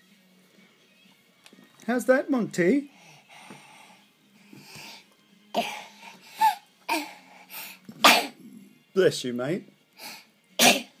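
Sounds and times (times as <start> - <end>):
faint breath in: 2.9 - 5.1
baby sneezing: 8.0 - 8.4, 10.6 - 11.0.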